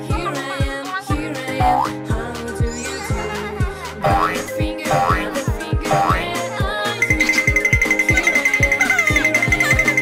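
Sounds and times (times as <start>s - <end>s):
upbeat cartoon music: 0.0s - 10.0s.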